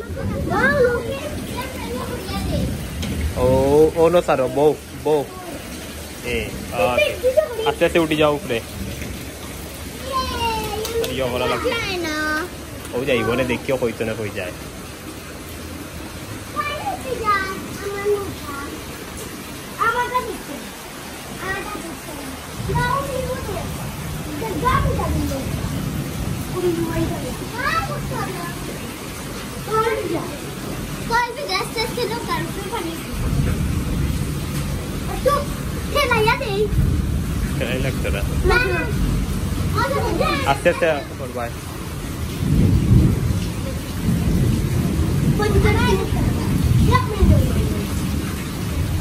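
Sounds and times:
thunder rumbling: 0:00.0 - 0:18.5, 0:21.4 - 0:49.0
heavy rain: 0:00.0 - 0:49.0.

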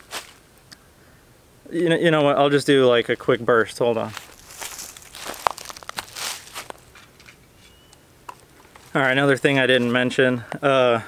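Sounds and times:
crinkling rustles: 0:04.0 - 0:10.0.

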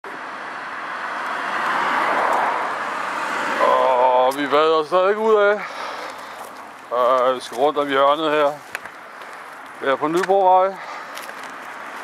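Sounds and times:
cars driving past: 0:00.0 - 0:12.0.

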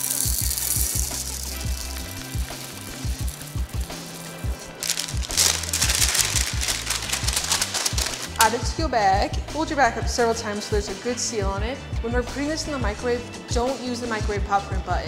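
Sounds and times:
popcorn kernels rattling into metal cup: 0:00.0 - 0:08.5
background music with steady beat: 0:00.0 - 0:15.0.

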